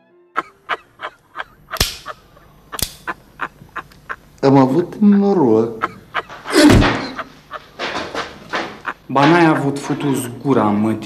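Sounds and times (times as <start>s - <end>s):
sharp snare cracks: 1.8s - 2.2s, 2.8s - 3.2s.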